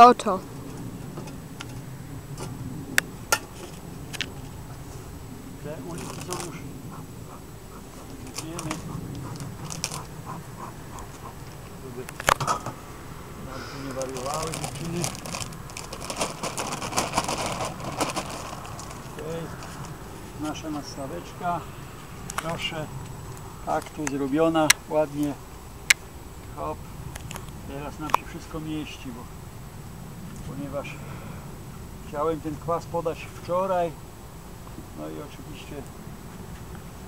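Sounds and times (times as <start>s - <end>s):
plastic foil crinkling and crackling: 5.9s - 6.6s, 9.6s - 10.1s, 13.9s - 20.0s.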